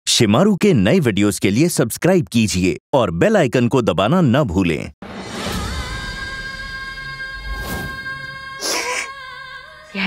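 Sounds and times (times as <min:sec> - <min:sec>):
woman sobbing: 0:08.6 - 0:09.2.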